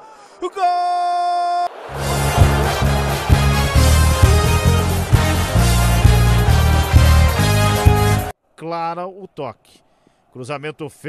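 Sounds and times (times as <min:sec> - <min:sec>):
music with heavy beat: 0:01.9 - 0:08.3.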